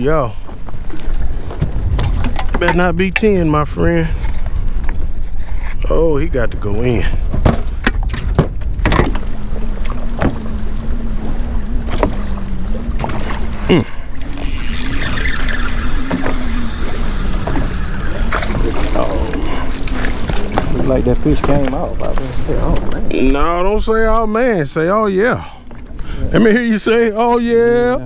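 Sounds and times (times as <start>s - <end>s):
wind buffeting microphone: 0.0s - 28.0s
knocks of handling in boat: 0.4s - 3.6s, 7.2s - 13.7s, 16.0s - 23.1s
electric trolling motor humming: 8.6s - 27.4s.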